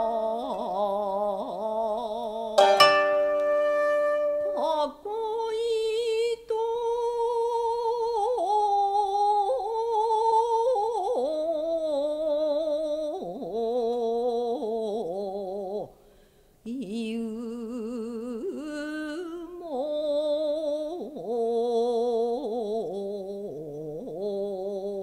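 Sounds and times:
person singing long held notes: 0:00.0 - 0:15.9
koto string plucked: 0:02.6 - 0:04.9.

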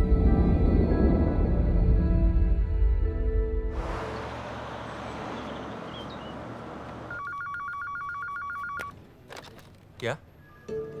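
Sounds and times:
desk telephone ringing: 0:07.1 - 0:08.9.

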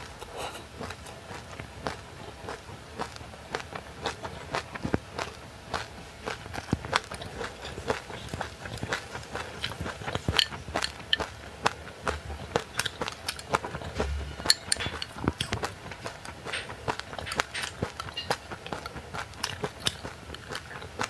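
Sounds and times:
chewing crisp crunches: 0:00.0 - 0:21.0.

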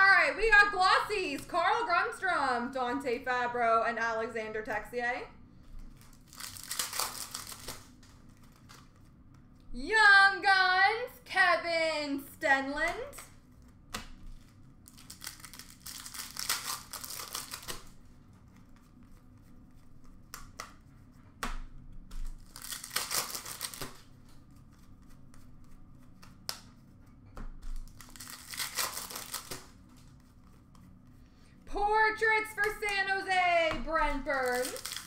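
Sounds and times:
card pack wrappers crinkling and tearing: 0:05.7 - 0:09.1, 0:13.0 - 0:20.8, 0:22.2 - 0:25.2, 0:27.7 - 0:31.0, 0:32.6 - 0:35.0.

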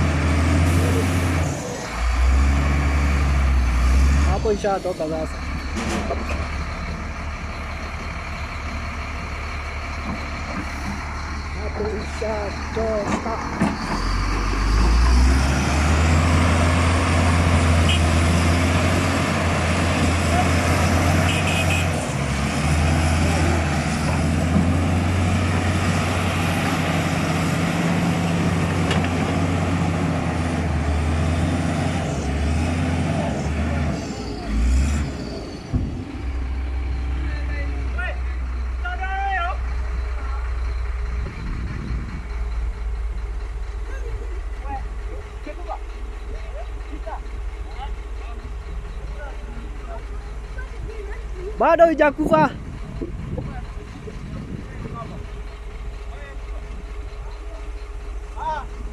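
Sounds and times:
excavator diesel engine under load: 0:00.0 - 0:58.9.

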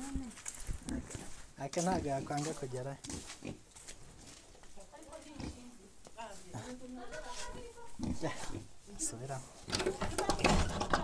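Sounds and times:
pigs grunting: 0:07.9 - 0:08.7.

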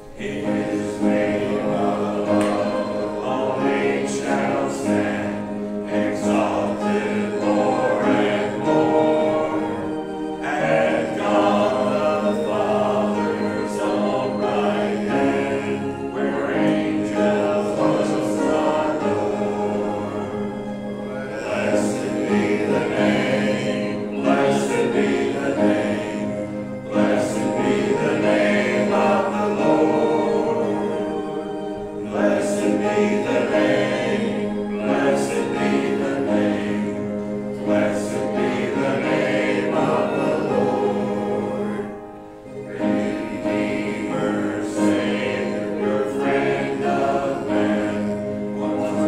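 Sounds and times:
congregation singing a hymn: 0:00.0 - 0:49.0.

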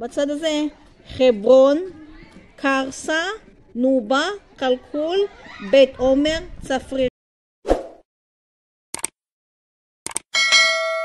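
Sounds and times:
bright bell ding: 0:10.4 - 0:11.0.

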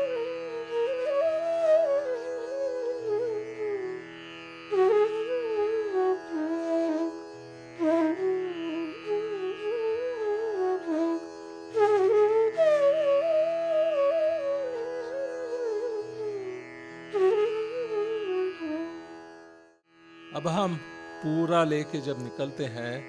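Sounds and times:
bamboo flute playing: 0:00.0 - 0:04.1, 0:04.7 - 0:07.2, 0:07.8 - 0:19.2.

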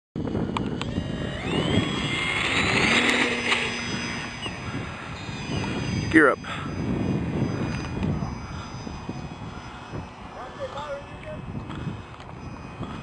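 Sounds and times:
model plane motor whine: 0:00.2 - 0:13.0.

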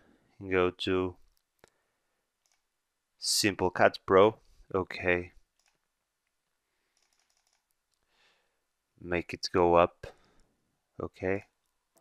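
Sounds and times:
computer mouse click: 0:02.4 - 0:02.7, 0:07.0 - 0:08.0.

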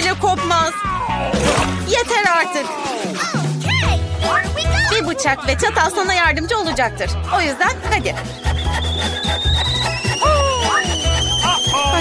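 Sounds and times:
upbeat background music: 0:00.0 - 0:12.0.

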